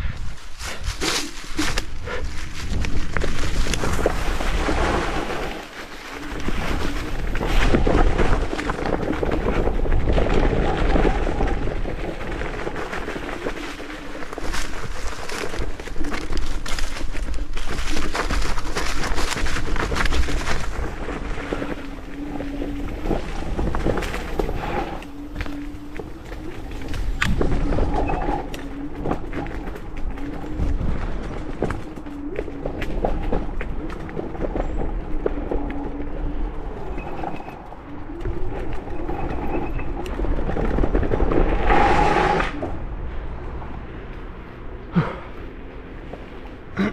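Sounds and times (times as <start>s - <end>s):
tyres rumbling on dirt trail: 0.0s - 46.9s
scooter frame rattling: 0.9s - 35.0s.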